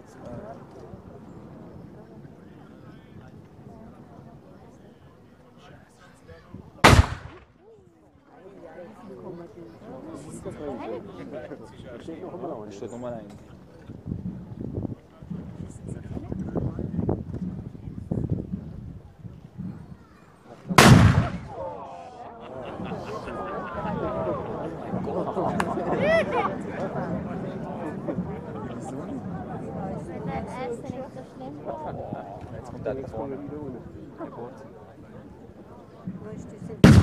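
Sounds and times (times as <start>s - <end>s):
black-powder gun shot: 6.8s - 7.5s, 20.8s - 21.6s
loud gunshot: 6.8s - 7.5s, 20.8s - 21.6s
excited voices: 21.4s - 27.1s.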